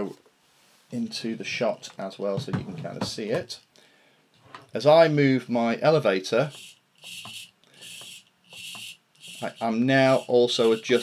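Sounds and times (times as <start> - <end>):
servo whirring: 6.5 - 11.0.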